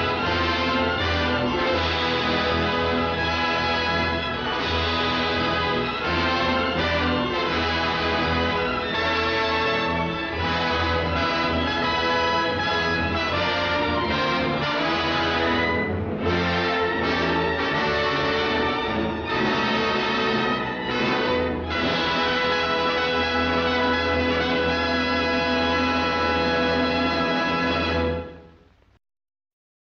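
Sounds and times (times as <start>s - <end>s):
orchestral music with brass: 0.0s - 28.8s.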